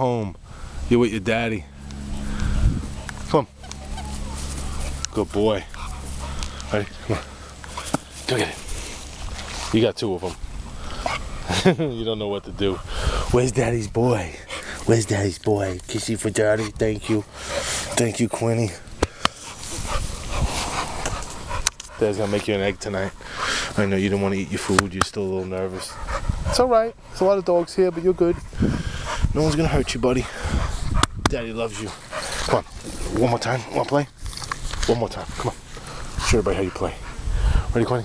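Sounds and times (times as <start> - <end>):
low rumble: 0.0 - 9.6
dog panting: 2.0 - 34.0, 34.9 - 38.0
man calling to a dog: 26.5 - 28.4.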